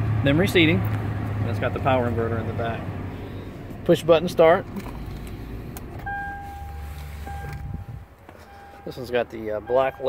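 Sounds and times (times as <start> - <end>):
low rumble: 4.9 - 8.2
electronic warning tone: 6.1 - 9.0, 9.6 - 10.0.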